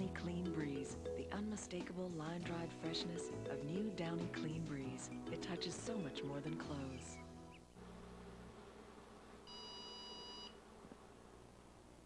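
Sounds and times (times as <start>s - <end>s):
dryer electronic beep: 9.5s - 10.6s.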